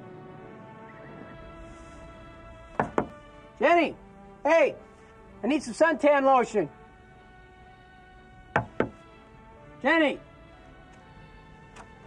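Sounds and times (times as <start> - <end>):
soft sustained music: 0.0 - 12.0
knocks on a door: 2.8 - 3.2, 8.6 - 9.0.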